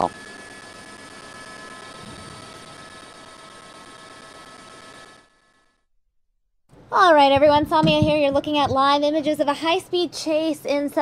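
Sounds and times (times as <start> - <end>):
helicopter cabin hum and whine: 0.0 - 5.8.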